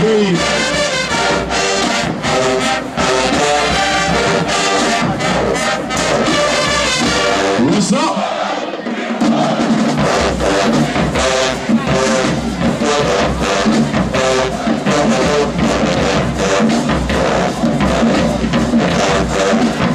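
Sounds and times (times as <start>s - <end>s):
marching band playing: 0.0s - 19.9s.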